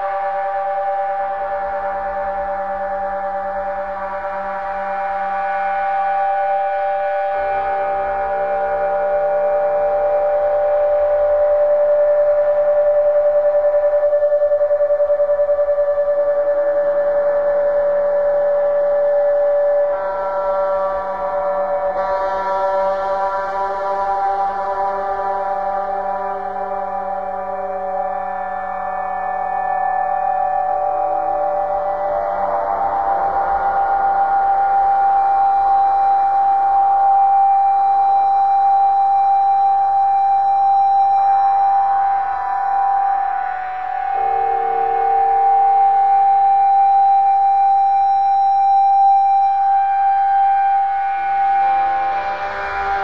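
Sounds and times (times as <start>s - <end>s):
drone music sustained tones: 0.0s - 53.0s.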